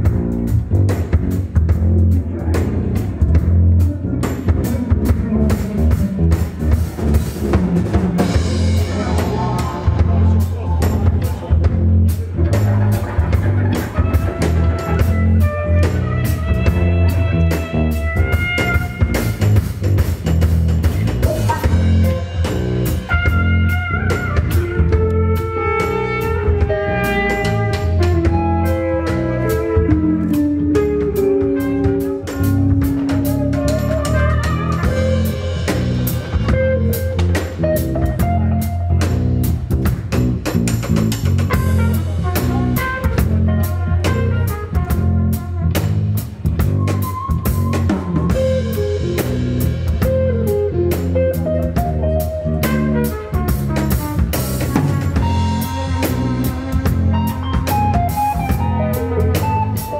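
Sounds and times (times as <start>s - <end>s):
bass guitar: 0.0s - 59.9s
drum kit: 0.0s - 59.9s
guitar: 0.0s - 59.9s
trumpet melody: 13.9s - 19.9s, 21.2s - 39.0s, 41.5s - 59.9s.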